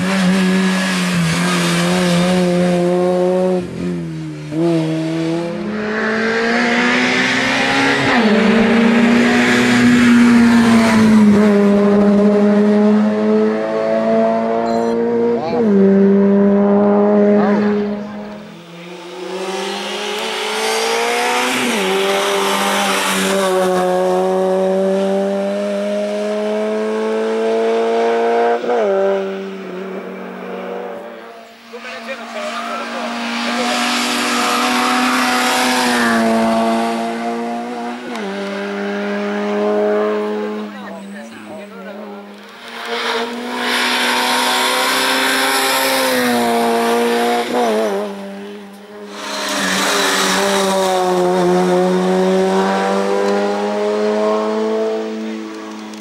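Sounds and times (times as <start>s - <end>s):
car engine accelerating hard: 0.0s - 56.0s.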